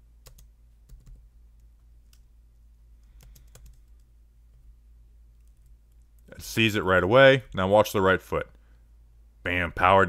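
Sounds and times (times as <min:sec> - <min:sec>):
faint low hum: 0:00.0 - 0:10.0
keyboard keys clicking: 0:03.2 - 0:04.1.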